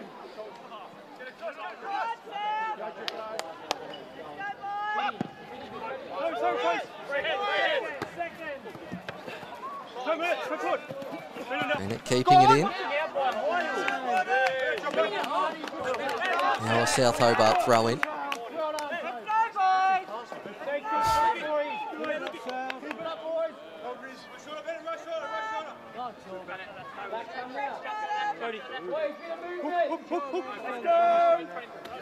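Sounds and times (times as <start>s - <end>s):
spectators talking: 11.3s - 12.9s, 16.6s - 18.0s
players calling out: 11.8s - 12.7s, 16.6s - 18.0s.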